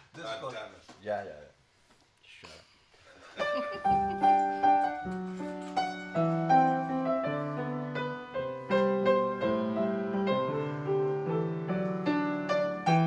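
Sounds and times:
upright piano chords and melody: 3.4 - 13.0.

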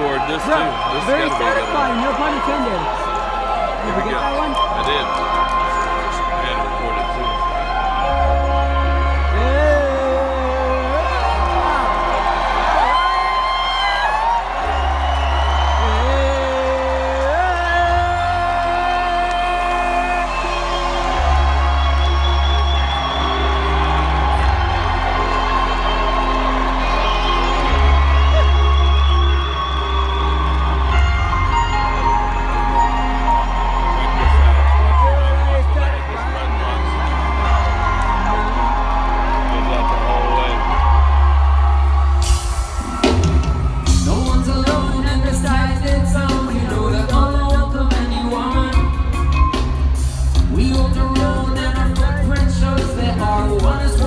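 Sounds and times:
crowd whooping and cheering: 0.0 - 54.0
live reggae band: 41.8 - 54.0.

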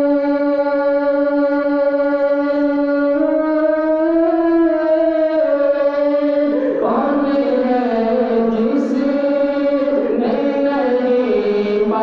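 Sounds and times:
man singing a long note: 0.0 - 12.0.

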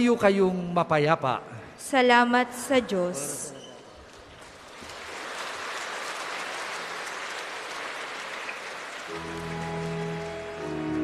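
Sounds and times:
congregation applauding: 4.0 - 11.0.

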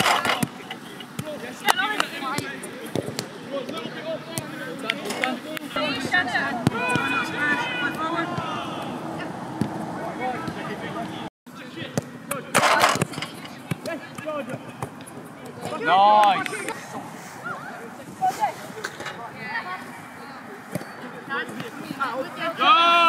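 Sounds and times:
loud rush of noise: 5.8 - 11.3
people shouting: 5.9 - 9.4, 22.5 - 23.0.

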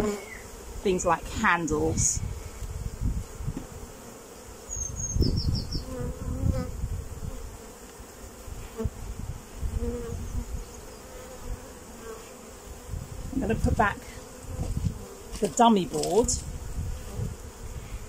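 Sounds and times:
bees buzzing: 0.0 - 18.0.

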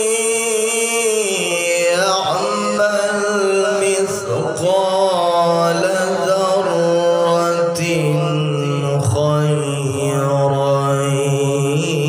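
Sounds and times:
man reciting melodically: 0.0 - 12.0.

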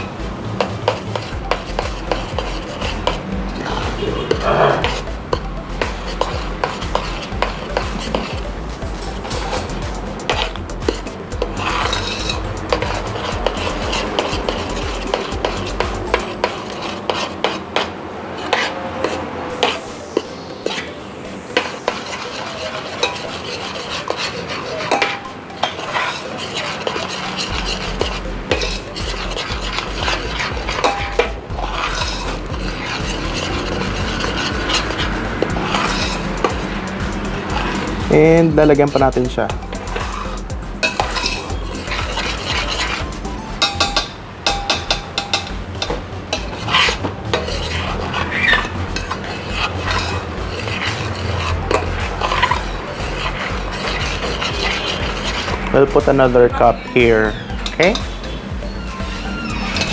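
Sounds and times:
metal spoon scraping pot: 0.0 - 59.9
spoon knocking against pot: 24.8 - 27.0, 43.6 - 49.7.

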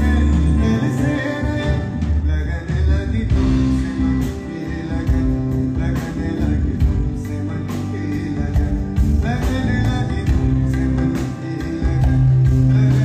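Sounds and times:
acoustic guitar: 0.0 - 13.0
electric guitar: 0.0 - 13.0
percussion: 0.0 - 13.0
steady bass: 0.0 - 13.0.

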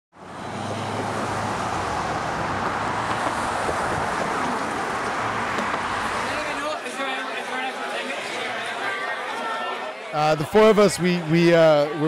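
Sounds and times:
cars driving past: 0.2 - 6.8.

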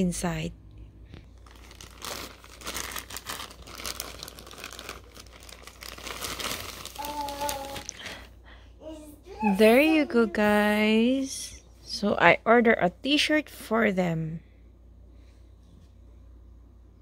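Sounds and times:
plastic bag crinkling and rustling: 1.1 - 8.3.

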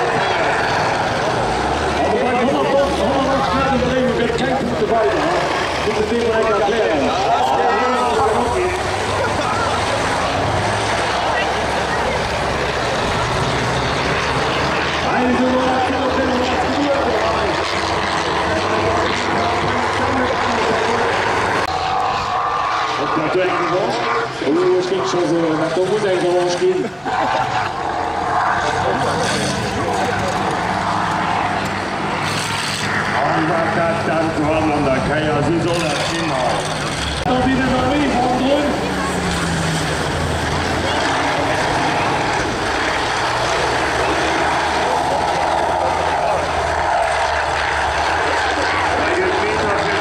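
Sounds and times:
combine harvester engines revving: 0.0 - 50.0.

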